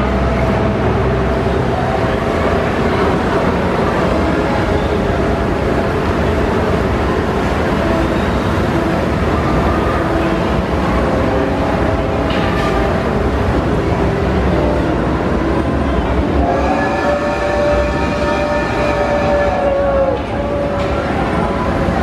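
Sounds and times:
steady background noise: 0.0s - 22.0s
steam locomotive whistle: 16.2s - 21.3s.

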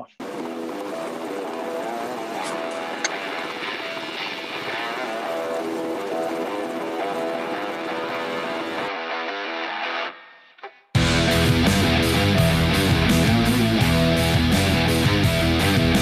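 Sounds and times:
music playing: 0.0s - 10.2s, 11.0s - 16.0s
helicopter hovering: 0.2s - 9.6s, 11.0s - 16.0s.

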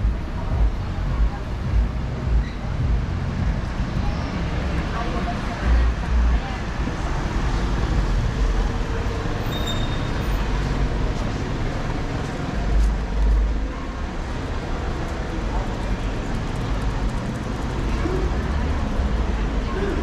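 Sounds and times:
road traffic passing: 0.0s - 20.0s.

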